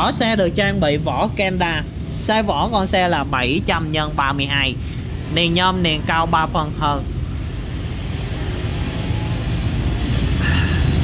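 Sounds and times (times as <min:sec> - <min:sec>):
low rumble of vehicle traffic: 0:00.0 - 0:11.0.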